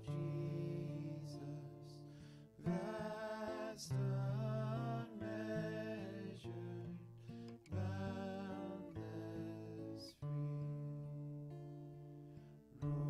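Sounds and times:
acoustic guitar strummed: 0.0 - 13.0.

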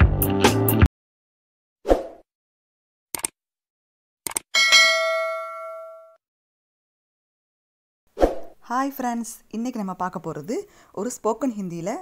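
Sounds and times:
bell ding: 4.6 - 6.2.

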